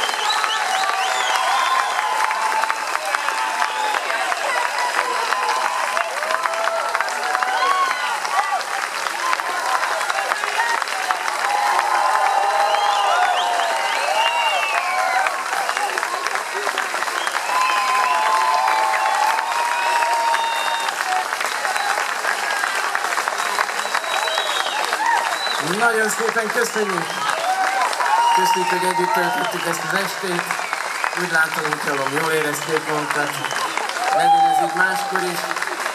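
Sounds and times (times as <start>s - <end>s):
audience applauding: 0.0s - 35.9s.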